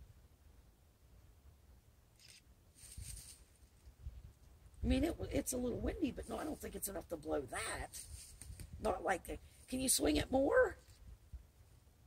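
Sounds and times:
soft rustles: 0:02.2 - 0:04.6, 0:07.8 - 0:08.8
wind buffeting microphone: 0:04.0 - 0:09.1.

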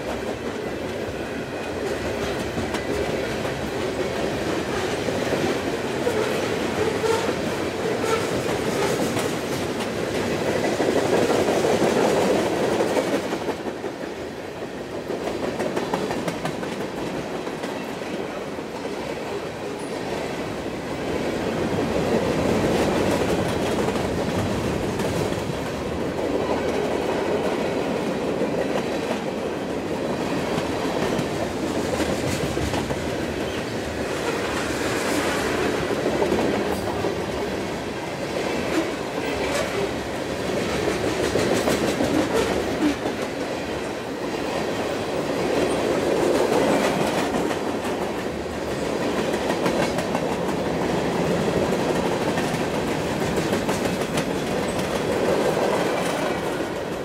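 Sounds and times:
train wheels clattering over rails: 0:00.0 - 0:57.0.

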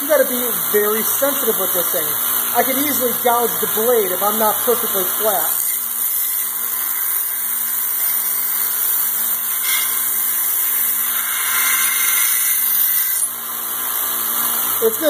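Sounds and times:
sander motor hum: 0:00.0 - 0:15.0
steel grinding on belt sander: 0:00.0 - 0:15.0.

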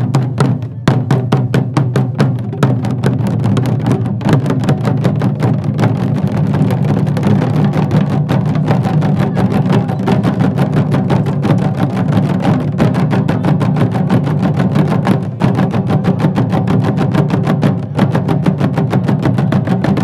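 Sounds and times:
folk drums beaten in fast rhythm: 0:00.0 - 0:20.0.

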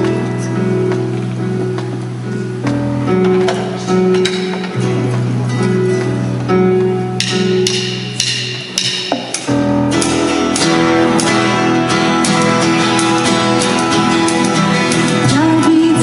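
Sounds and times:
strummed guitar: 0:00.0 - 0:16.0
worship band playing: 0:00.0 - 0:16.0.

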